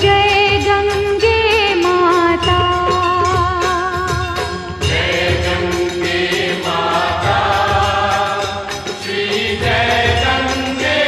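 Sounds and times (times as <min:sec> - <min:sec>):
steady drum beat: 0:00.0 - 0:11.0
voices singing together: 0:04.0 - 0:11.0.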